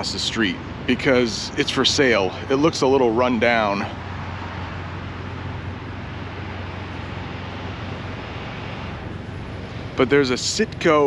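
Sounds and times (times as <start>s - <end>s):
low engine hum: 0.0s - 11.0s
traffic noise hiss: 0.0s - 11.0s.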